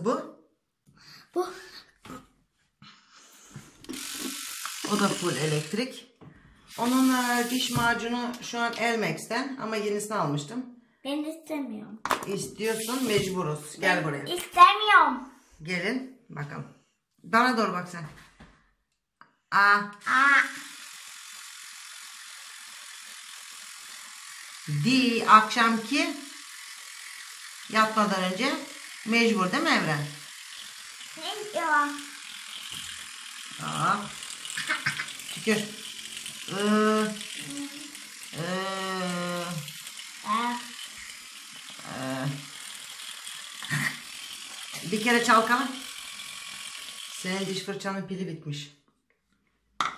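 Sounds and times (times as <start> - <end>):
electric toothbrush buzzing: 3.8 - 9.0, 12.6 - 14.5, 19.9 - 48.0.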